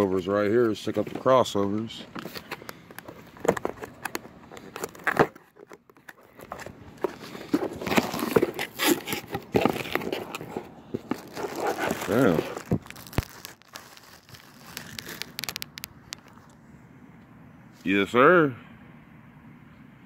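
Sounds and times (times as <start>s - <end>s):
plastic bags crinkling: 2.1s - 16.4s.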